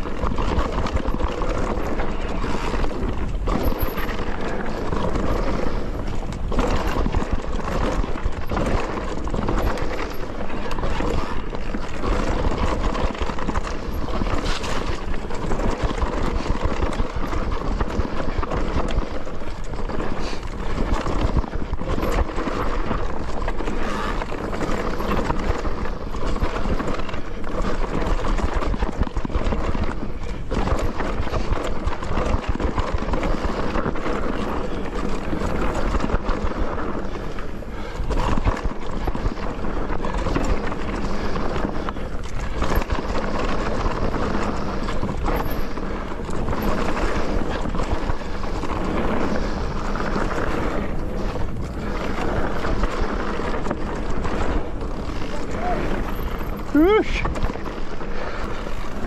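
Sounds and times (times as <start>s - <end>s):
mountain bike rattling over trail: 0.0s - 59.0s.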